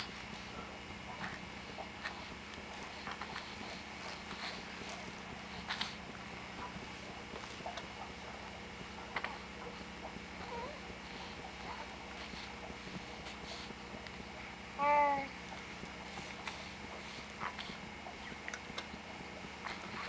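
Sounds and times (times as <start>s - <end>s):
faint clicks and rustles: 0.0s - 14.4s
steady low hum: 0.0s - 20.0s
baby cooing: 10.4s - 10.8s, 14.8s - 15.4s.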